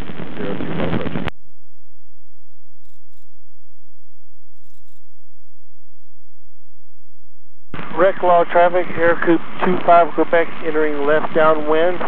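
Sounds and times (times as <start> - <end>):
light aircraft engine rumble: 0.2 - 1.3, 7.8 - 12.0.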